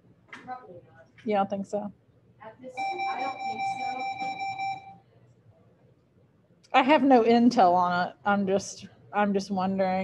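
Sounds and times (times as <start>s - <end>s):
high-pitched electronic buzzer: 2.8s - 5.0s.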